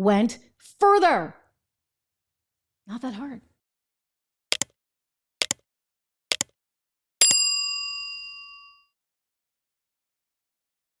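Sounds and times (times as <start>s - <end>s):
sharp click: 4.5s - 4.8s, 5.4s - 5.6s, 6.3s - 6.6s
bell strike ringing: 7.2s - 8.9s.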